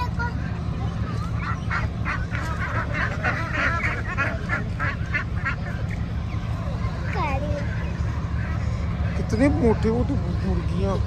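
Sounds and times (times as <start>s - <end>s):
steady low hum: 0.0s - 11.0s
ducks quacking: 1.2s - 6.4s.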